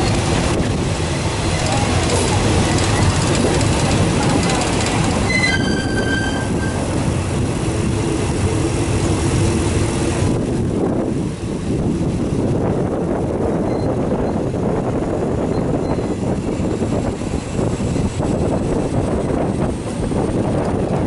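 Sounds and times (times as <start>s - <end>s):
train wheels rumbling on rails: 0.0s - 21.0s
brief high squeal: 5.3s - 6.8s.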